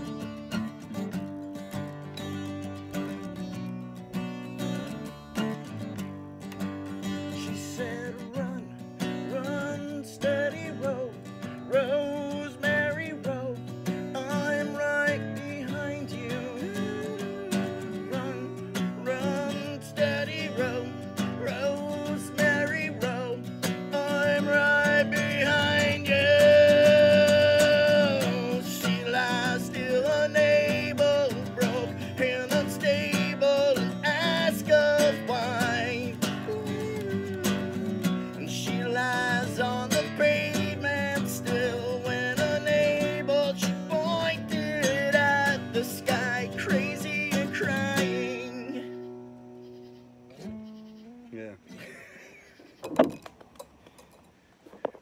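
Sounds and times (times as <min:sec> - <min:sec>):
two acoustic guitars playing: 0:00.0 - 0:55.0.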